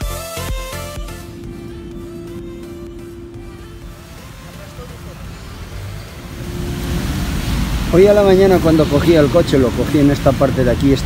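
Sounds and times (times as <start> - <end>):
background music: 0.0 - 9.1
street noise: 0.0 - 11.0
low rumble: 0.9 - 9.8.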